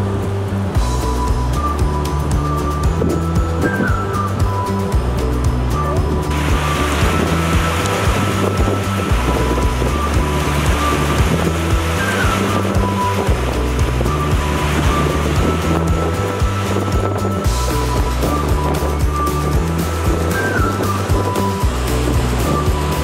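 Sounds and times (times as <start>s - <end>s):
background music with bass line: 0.0s - 23.0s
rushing river water: 0.0s - 23.0s.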